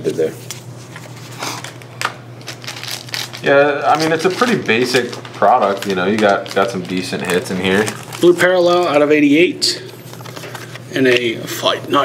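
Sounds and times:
cards and wrappers rustling: 0.2s - 9.0s.

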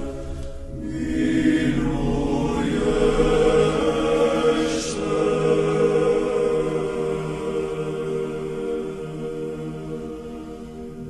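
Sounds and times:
choir chanting long notes: 0.0s - 11.0s
low sustained drone: 0.0s - 11.0s.

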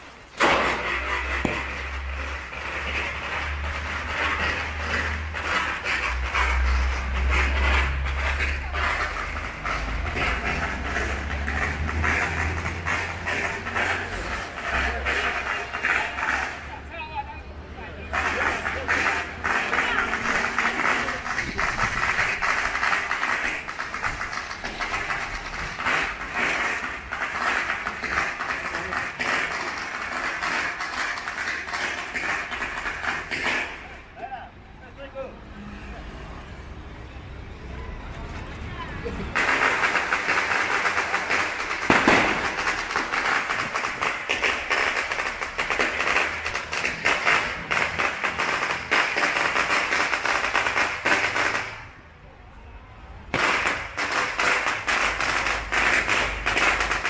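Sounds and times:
firecrackers crackling: 0.0s - 35.1s, 39.0s - 52.1s, 53.2s - 57.0s
crowd voices: 0.0s - 48.3s.

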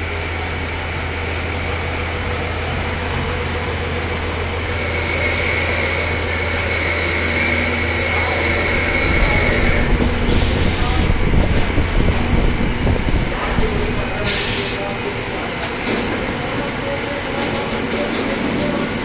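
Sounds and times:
workshop machinery humming: 0.0s - 19.0s
high-pitched whine: 0.2s - 15.2s.

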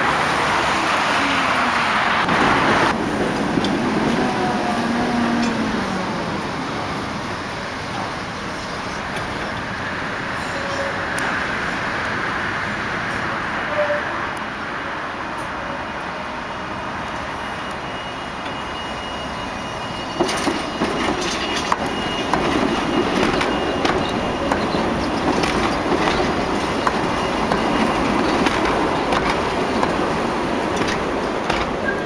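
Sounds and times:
rail yard background: 0.0s - 32.0s
tram rumbling past: 0.0s - 32.0s
wheels clicking over rail joints: 20.2s - 32.0s.

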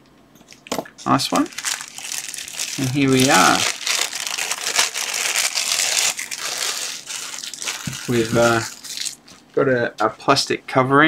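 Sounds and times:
plastic bag crinkling: 1.0s - 9.5s.

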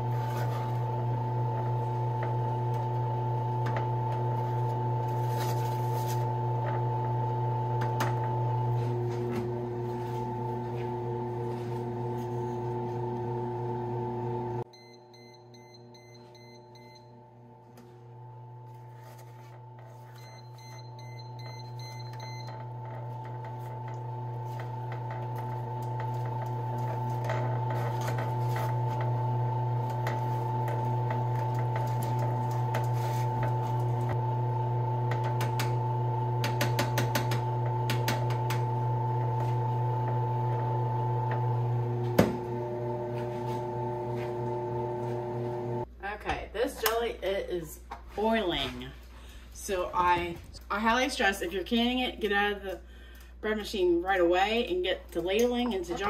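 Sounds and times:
bread machine beeping: 14.7s - 17.3s, 19.6s - 36.5s.

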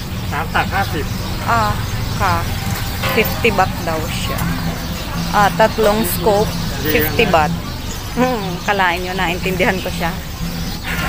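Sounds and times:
person talking: 0.4s - 2.5s, 3.2s - 4.5s, 5.4s - 7.6s, 8.2s - 10.2s.

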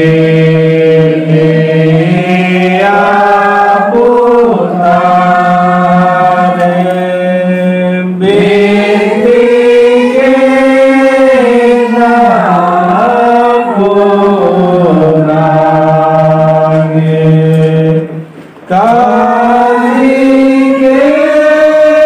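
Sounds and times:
women singing a hymn: 0.0s - 22.0s.

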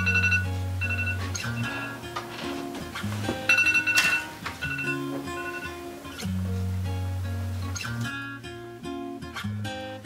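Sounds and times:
phone alarm chime tune: 0.0s - 2.0s, 3.4s - 5.9s
background music: 0.0s - 10.0s.

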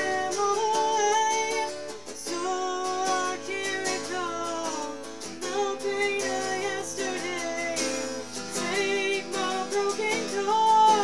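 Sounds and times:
electric guitar strumming: 0.0s - 11.0s
young woman singing: 0.0s - 11.0s.

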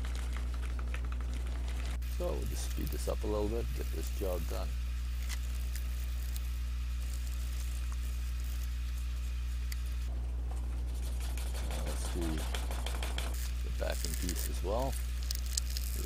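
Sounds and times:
low electrical hum: 0.0s - 16.0s
burnisher rubbing leather edge: 10.7s - 16.0s.

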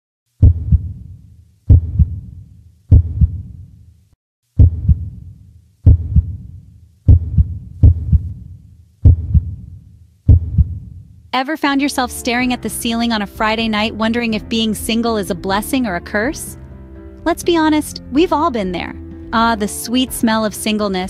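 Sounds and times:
deep heartbeat thumps: 0.4s - 3.6s, 4.6s - 11.1s.

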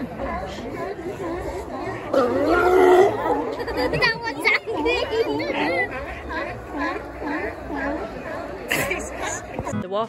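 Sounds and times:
sea lions barking: 0.0s - 9.7s
people chattering: 0.0s - 10.0s.

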